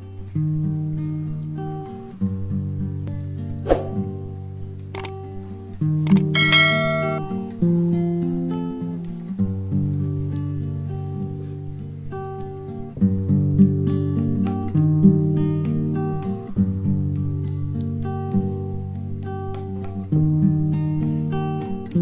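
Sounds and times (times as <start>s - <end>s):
guitar chords: 0.0s - 22.0s
sweeping whoosh: 3.6s - 4.2s
clicks: 4.9s - 5.2s, 6.0s - 7.2s
bright ringing chime: 6.1s - 7.2s.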